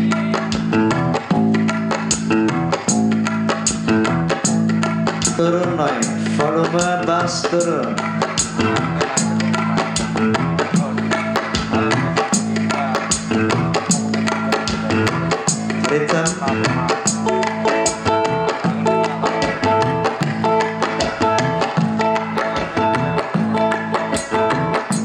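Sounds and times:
band playing instrumental groove: 0:00.0 - 0:25.0
bass line: 0:00.0 - 0:25.0
guitar: 0:00.0 - 0:25.0
hand drum and drum kit beat: 0:00.0 - 0:25.0.

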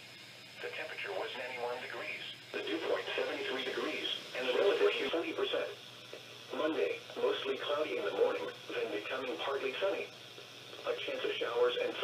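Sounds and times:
radio voice speaking: 0:00.6 - 0:05.8, 0:06.5 - 0:10.1, 0:10.8 - 0:12.0.

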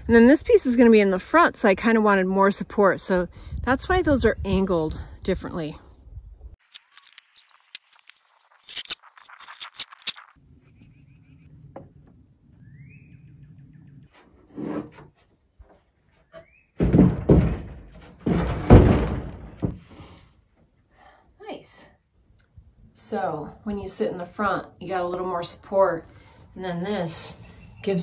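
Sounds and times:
thuds and scraping wood: 0:14.1 - 0:19.9.

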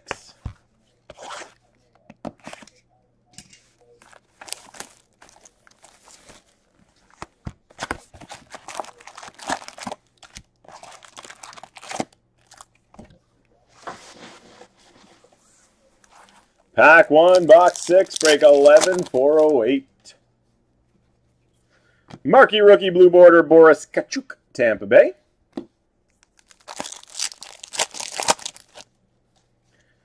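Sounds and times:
foil packs crinkling: 0:04.0 - 0:07.2, 0:07.8 - 0:12.7, 0:16.8 - 0:19.6, 0:26.3 - 0:28.8.

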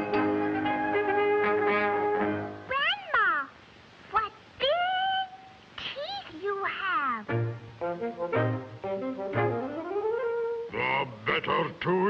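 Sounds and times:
brass band music: 0:00.0 - 0:02.6, 0:07.3 - 0:10.7
cartoon cat meowing: 0:02.7 - 0:03.5.

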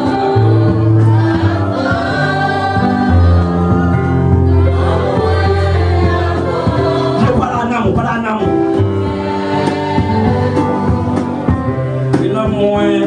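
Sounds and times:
congregation singing gospel: 0:00.0 - 0:13.0
instrumental accompaniment: 0:00.0 - 0:13.0.

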